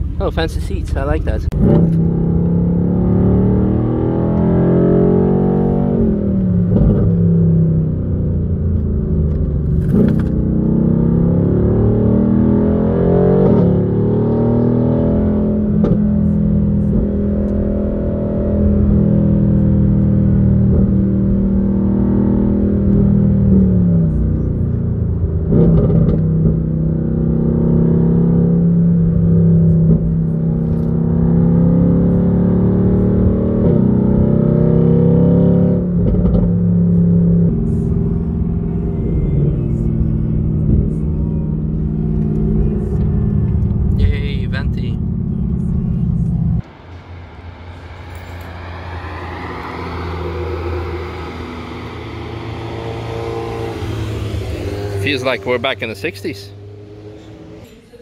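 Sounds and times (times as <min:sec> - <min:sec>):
car engine running: 0:00.0 - 0:34.2, 0:35.8 - 0:58.0
road rumble: 0:00.0 - 0:58.0.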